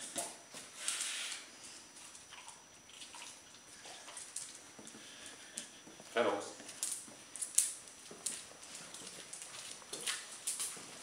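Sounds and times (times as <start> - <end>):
person's footsteps: 3.8 - 11.0.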